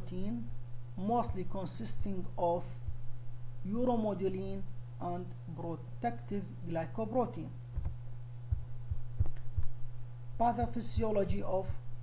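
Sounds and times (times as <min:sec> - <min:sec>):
low electrical hum: 0:00.0 - 0:12.0
soft low thumps: 0:01.2 - 0:01.6, 0:02.7 - 0:03.5, 0:07.6 - 0:12.0.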